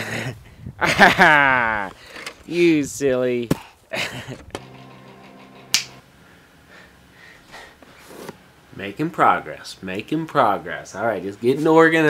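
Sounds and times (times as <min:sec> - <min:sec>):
low steady hum: 0:04.2 - 0:12.0
sharp snap: 0:05.7 - 0:06.0.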